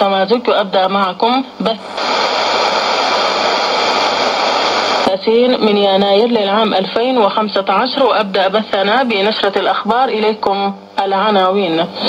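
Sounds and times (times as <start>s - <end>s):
shortwave radio static hiss: 0.0s - 12.0s.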